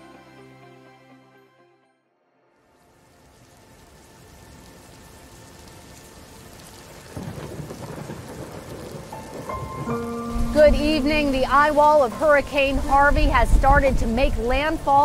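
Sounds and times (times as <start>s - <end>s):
rain: 2.5s - 15.0s
thunder rumbling: 3.3s - 15.0s.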